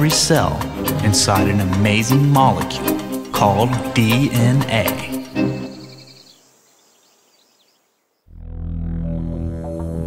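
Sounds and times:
background music: 0.0s - 6.4s, 8.4s - 10.0s
low synthesizer tones: 8.3s - 10.0s.

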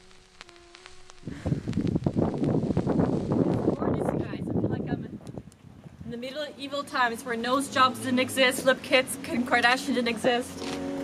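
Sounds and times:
wind buffeting microphone: 1.1s - 8.8s
background music: 7.6s - 11.0s.

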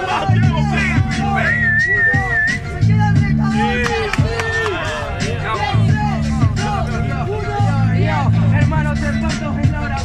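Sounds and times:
crowd voices: 0.0s - 10.0s
hip-hop beat with deep bass: 0.0s - 10.0s
person whistling: 1.4s - 2.8s.

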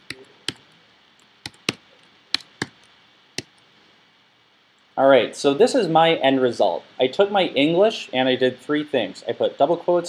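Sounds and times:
keyboard typing: 0.0s - 0.8s, 1.4s - 3.6s.

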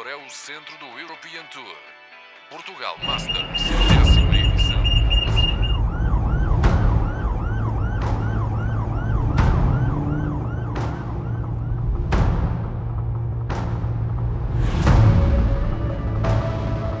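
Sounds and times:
high pulsing beep: 3.0s - 5.9s
alarm siren whooping: 3.0s - 11.9s
film score music with low drone: 3.0s - 17.0s.

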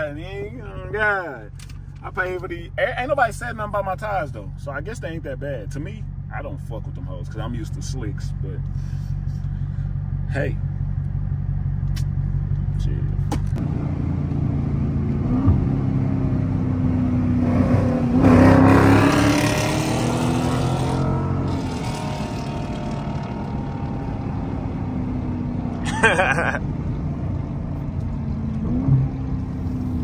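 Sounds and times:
car engine accelerating: 0.0s - 30.0s.

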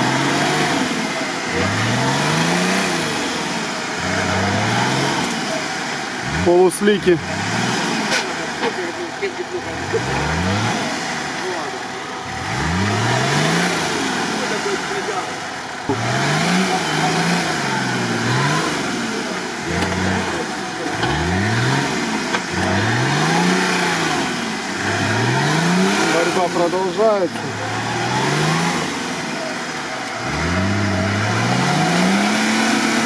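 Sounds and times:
off-road vehicle engine revving: 0.0s - 33.0s.

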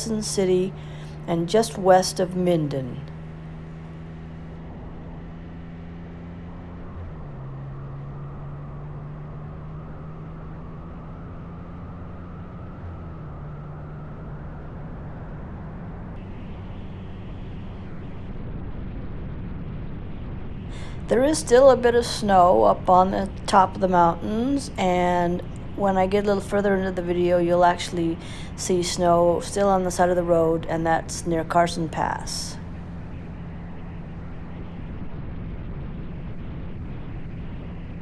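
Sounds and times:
motorcycle engine running: 0.0s - 38.0s
wind and road rush: 0.0s - 38.0s.

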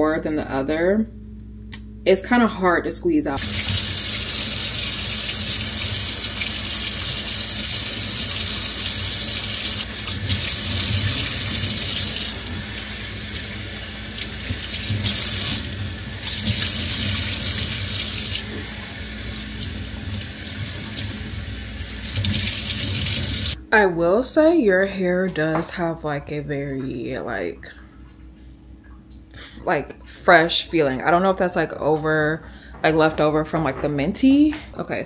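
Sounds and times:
faucet running into metal sink: 3.4s - 23.6s.

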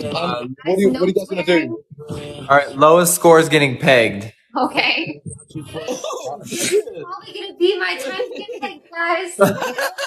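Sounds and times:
people talking and laughing: 0.0s - 3.6s, 4.8s - 10.0s.

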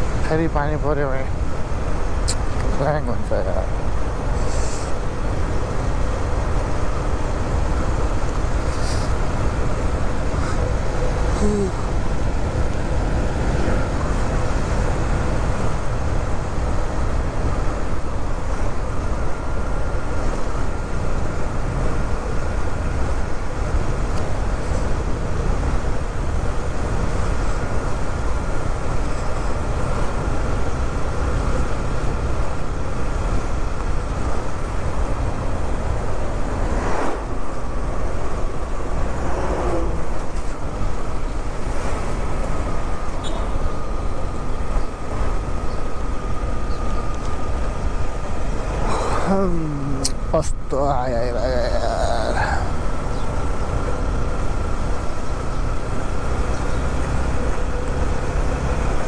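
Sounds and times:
faint steady whine: 0.0s - 59.0s
wind rushing over microphone: 0.0s - 59.0s.

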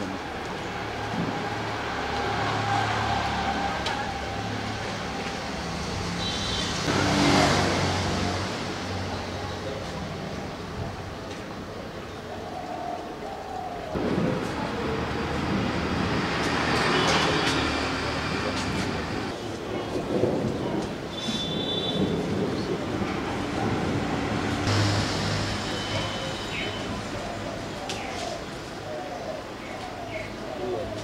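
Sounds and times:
vehicle passing by: 0.7s - 10.7s, 22.6s - 28.6s.

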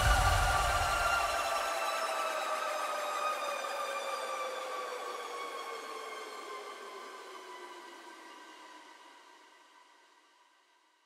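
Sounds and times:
sustained synth tone gliding down: 0.0s - 1.5s.

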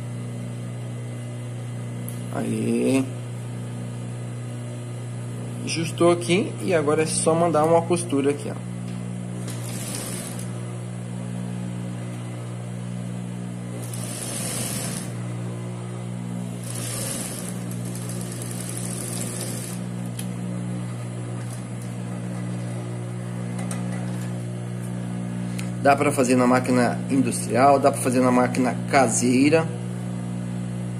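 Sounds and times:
sewing machine motor humming: 9.3s - 10.6s, 13.6s - 22.9s
sewing machine stitching: 9.4s - 10.6s, 13.8s - 15.2s, 16.6s - 19.9s.

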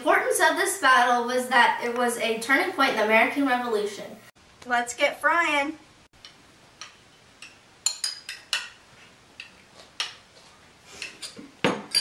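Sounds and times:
spoons and dishes clinking: 6.8s - 8.8s, 11.0s - 12.0s.

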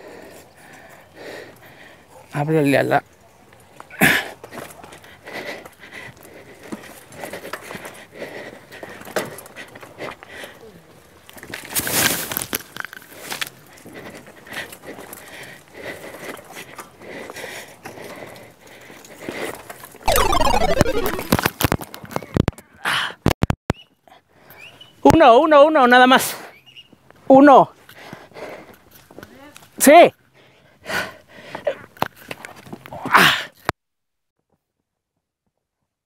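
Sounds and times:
scraping rush of fall: 20.1s - 21.4s.

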